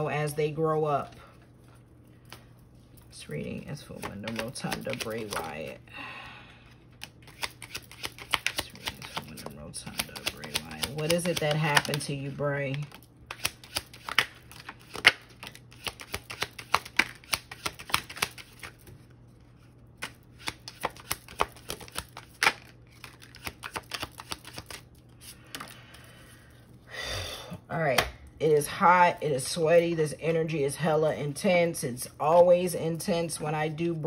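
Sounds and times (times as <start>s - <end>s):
cards shuffling: 3.8s - 5.7s, 7.0s - 25.8s.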